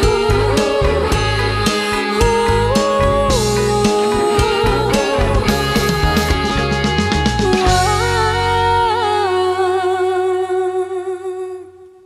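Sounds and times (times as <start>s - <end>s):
sustained musical backing: 0.0s - 10.9s.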